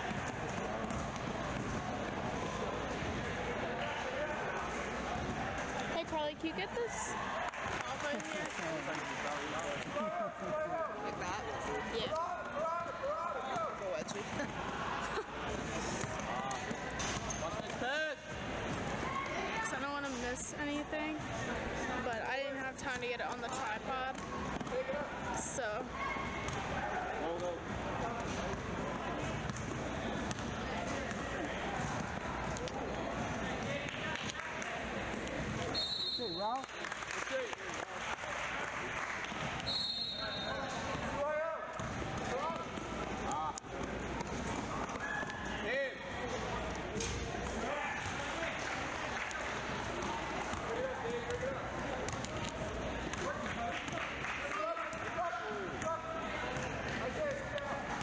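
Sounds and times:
voices echoing in a hall: 0.0s - 58.0s
short high whistle blasts: 39.6s - 40.6s.

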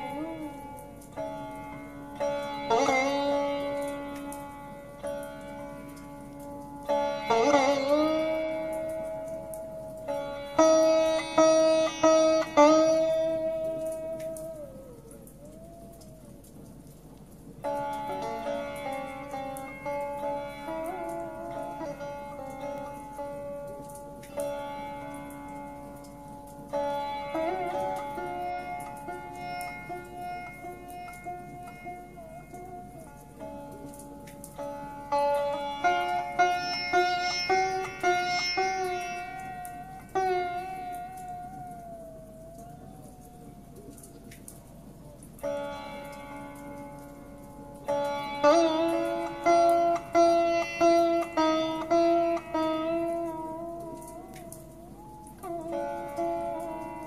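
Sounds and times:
sitar drone: 0.0s - 16.3s, 17.4s - 57.0s
sitar plucked notes: 0.0s - 57.0s.

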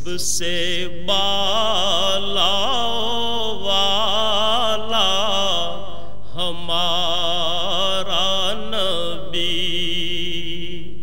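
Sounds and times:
man chanting: 0.0s - 11.0s.

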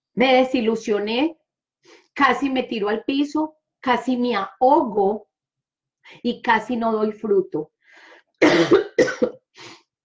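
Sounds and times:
faint breath: 7.8s - 8.4s
woman coughing: 8.4s - 9.6s.

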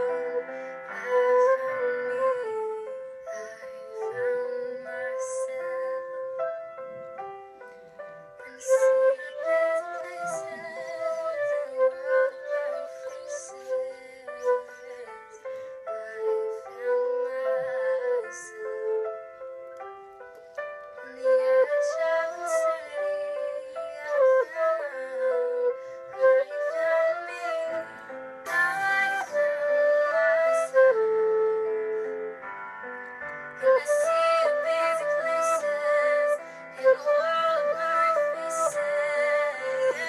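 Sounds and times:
flute playing a melody: 0.0s - 40.0s.

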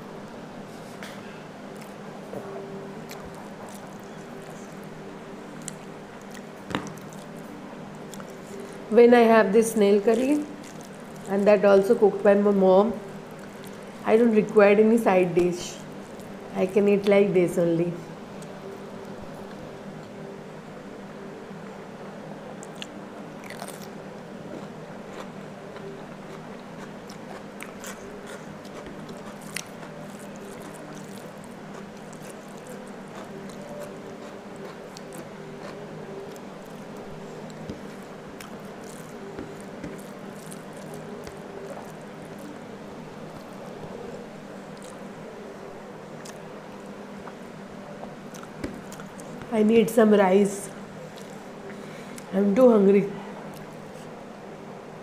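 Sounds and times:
steady low hum: 0.0s - 55.0s
chewing: 3.0s - 4.9s, 5.5s - 8.8s, 10.2s - 12.0s, 13.2s - 14.0s, 22.6s - 23.9s, 24.5s - 42.7s, 44.7s - 45.0s, 46.2s - 47.4s, 48.0s - 49.5s, 51.1s - 52.3s
cucumber crunching: 10.0s - 14.6s, 22.6s - 44.0s, 44.7s - 45.0s, 46.2s - 47.4s, 48.0s - 49.5s, 51.1s - 51.4s.

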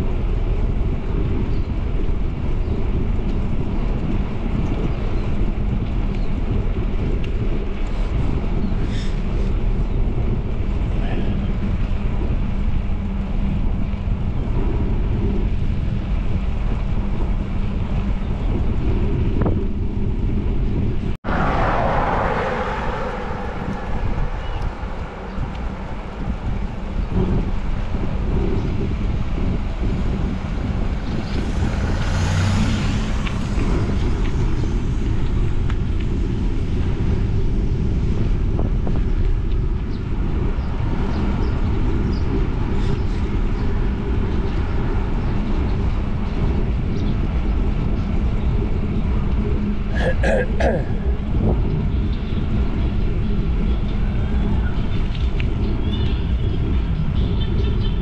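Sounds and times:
wind buffeting microphone: 0.0s - 58.0s.

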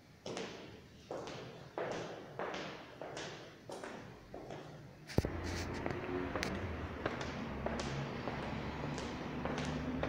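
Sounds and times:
shuffling footsteps on tiles: 0.2s - 10.0s.

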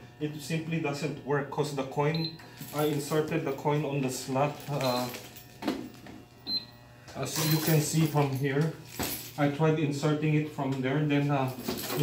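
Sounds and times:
low steady hum: 0.0s - 12.0s
coin mechanism clicks: 4.6s - 5.4s, 7.3s - 8.7s.

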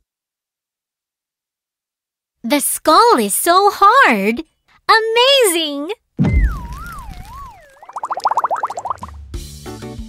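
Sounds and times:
bubbling warble of rising chirps: 6.2s - 9.1s
wobbling whistle sliding downward: 6.3s - 8.7s.

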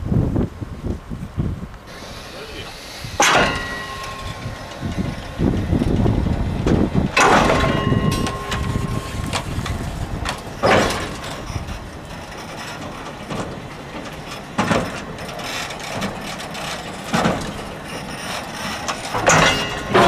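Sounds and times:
low rumble: 0.0s - 15.3s
metallic clanging strikes: 3.1s - 15.3s, 18.9s - 20.0s.

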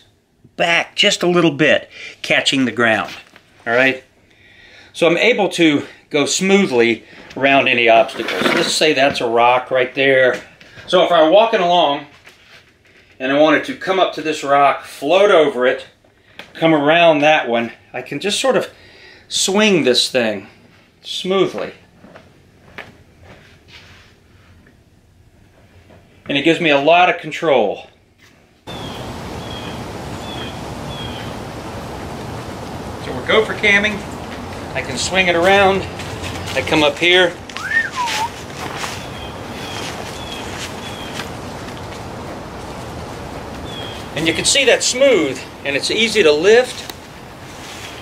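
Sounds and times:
soft rustles: 12.0s - 13.2s, 21.8s - 26.3s, 33.9s - 44.2s, 46.5s - 48.0s
bird chirping: 28.7s - 31.6s, 37.6s - 41.3s, 43.6s - 44.4s
footsteps through dry leaves: 34.1s - 44.2s, 46.6s - 48.0s.

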